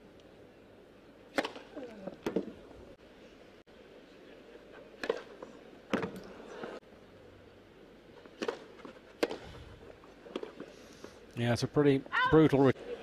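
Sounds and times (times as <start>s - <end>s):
tennis ball struck by rackets: 1.3s - 2.6s, 5.0s - 5.3s, 5.9s - 6.2s, 8.4s - 9.5s.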